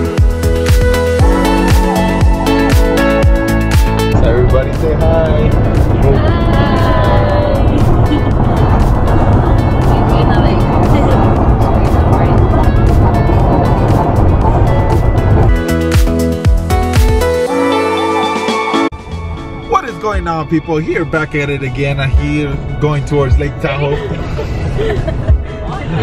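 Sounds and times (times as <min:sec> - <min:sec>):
car road and engine noise: 0:00.0 - 0:26.0
passengers talking: 0:04.2 - 0:15.1, 0:19.8 - 0:26.0.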